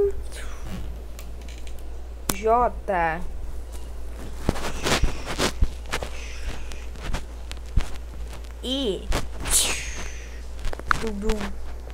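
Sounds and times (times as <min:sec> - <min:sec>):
low hum: 0:00.0 - 0:11.9
noisy rustle: 0:03.4 - 0:11.9.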